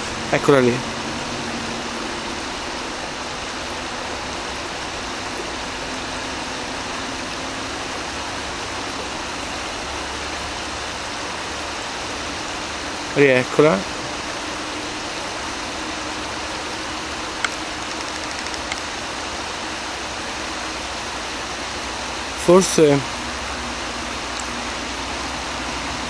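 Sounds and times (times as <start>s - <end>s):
river water rushing: 0.0s - 13.2s, 13.8s - 26.0s.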